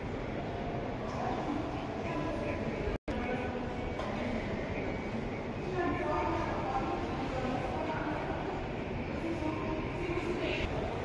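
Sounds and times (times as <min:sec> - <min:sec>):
airport terminal ambient rumble: 0:00.0 - 0:11.0.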